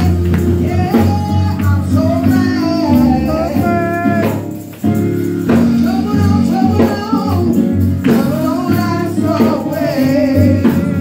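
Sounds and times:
live instrumental accompaniment: 0.0s - 11.0s.

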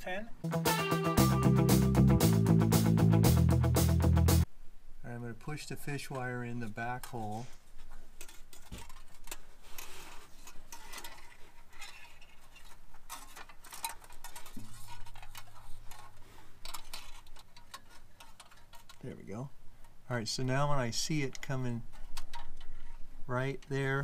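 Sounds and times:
metal wire rattling in steel: 8.2s - 19.1s.

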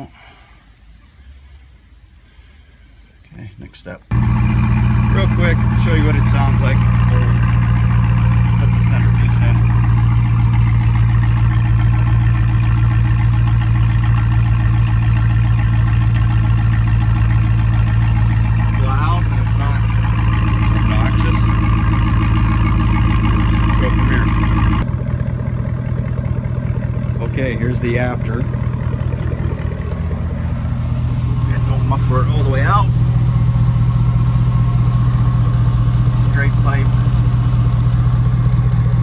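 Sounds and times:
truck engine idling: 4.1s - 39.0s.

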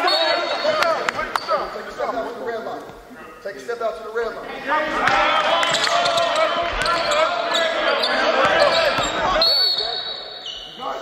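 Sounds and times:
players calling out: 4.4s - 11.0s
sneakers squeaking on gym floor: 5.7s - 11.0s.

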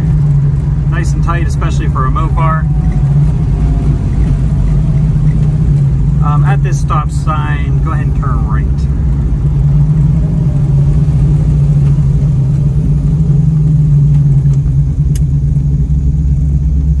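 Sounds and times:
car engine running: 0.0s - 17.0s.

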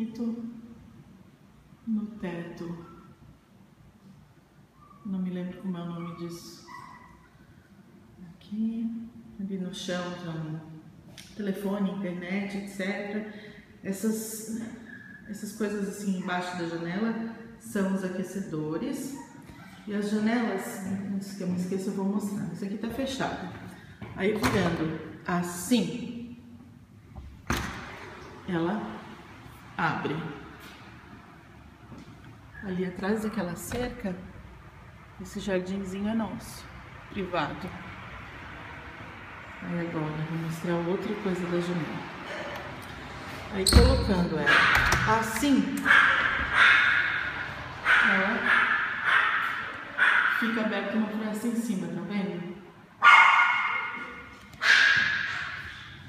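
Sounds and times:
outdoor background noise: 0.0s - 56.0s
dog whining: 6.0s - 7.4s.

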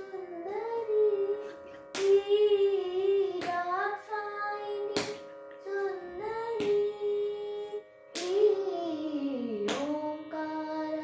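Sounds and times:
boy singing ornamented melody: 0.0s - 11.0s
hand clap: 1.7s - 2.2s, 3.3s - 3.8s, 4.8s - 5.6s, 6.5s - 6.9s, 8.1s - 8.5s, 9.6s - 10.1s.

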